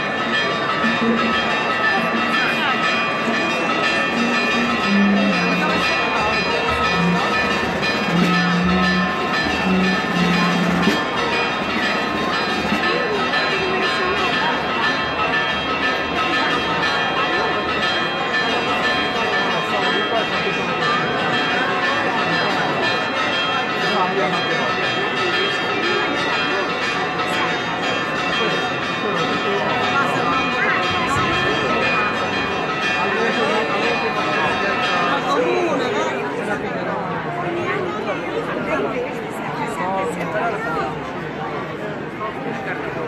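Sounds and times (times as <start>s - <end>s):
church bells ringing: 0.0s - 43.0s
crowd hubbub: 0.0s - 43.0s
low held note: 4.2s - 11.1s.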